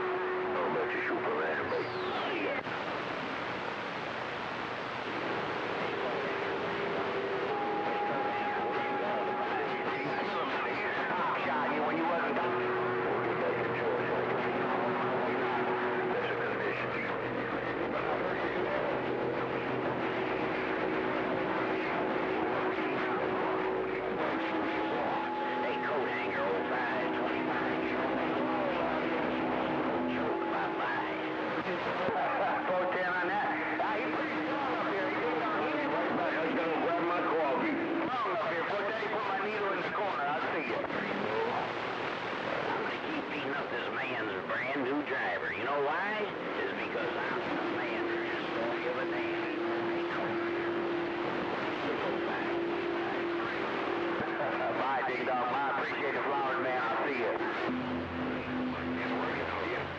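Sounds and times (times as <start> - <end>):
garbled overlapping radio voices: 0.0 - 59.9
radio static hiss: 0.0 - 59.9.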